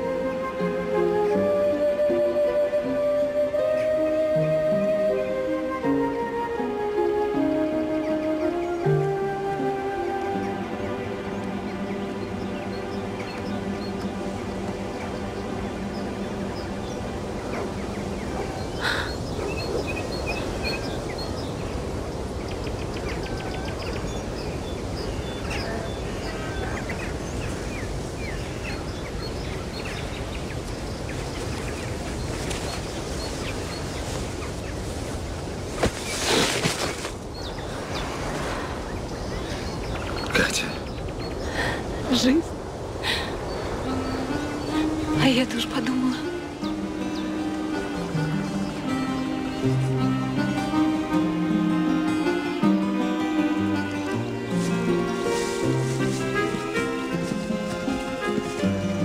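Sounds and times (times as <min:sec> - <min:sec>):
music: 0:00.0 - 0:21.0, 0:43.7 - 0:59.0
small birds chirping: 0:00.0 - 0:59.0.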